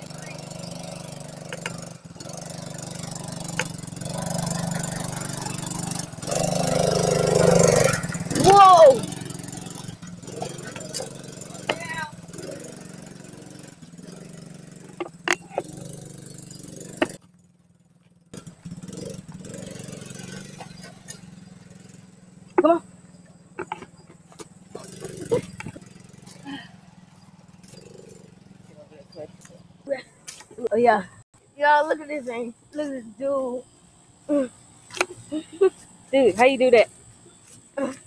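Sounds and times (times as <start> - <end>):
atv engine running at low revs: 0.0 - 31.2
people calling out: 8.3 - 9.1, 11.5 - 12.2.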